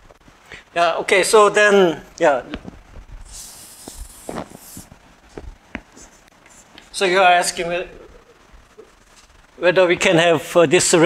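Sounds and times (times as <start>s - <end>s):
chalk scratching on blackboard: 3.3s - 4.9s.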